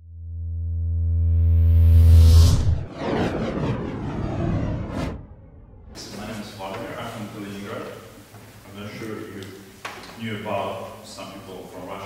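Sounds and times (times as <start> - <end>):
whoosh with falling sweeps: 1.1 - 6.2.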